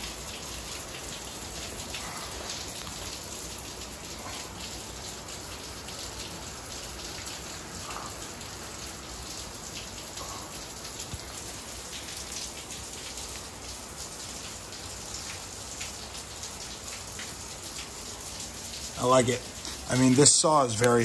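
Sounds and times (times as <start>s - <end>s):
raindrops pattering on hard surfaces: 0.0s - 21.0s
steady rain hiss: 0.0s - 21.0s.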